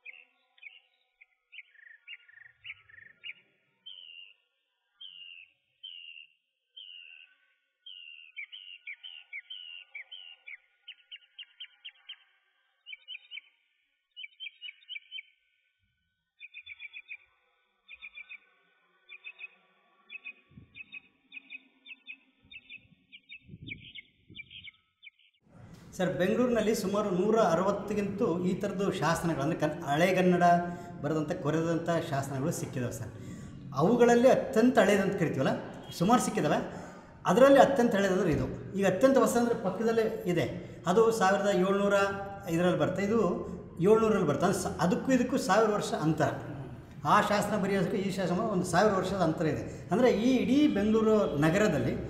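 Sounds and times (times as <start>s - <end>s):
small birds chirping: 0.0s - 15.6s, 16.4s - 25.4s.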